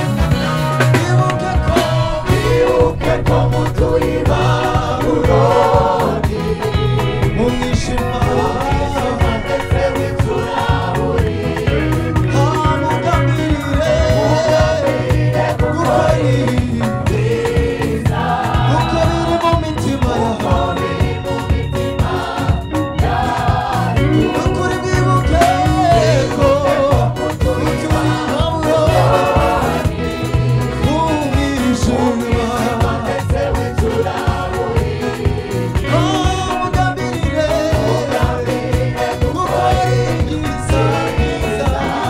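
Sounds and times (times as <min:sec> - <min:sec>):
gospel choir singing: 0:00.0 - 0:42.0
lead singer: 0:00.0 - 0:42.0
steady beat and bass line: 0:00.0 - 0:42.0.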